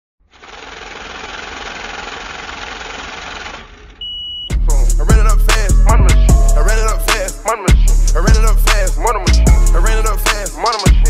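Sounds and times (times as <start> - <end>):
rapid mechanical rattle: 0.2 - 4.0.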